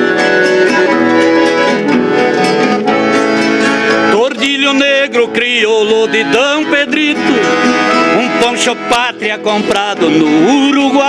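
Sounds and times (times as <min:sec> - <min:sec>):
acoustic guitars plucking: 0:00.0 - 0:11.0.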